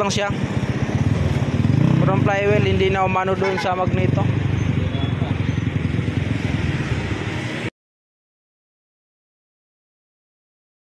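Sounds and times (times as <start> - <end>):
motorcycle engine idling: 0.1 - 6.7.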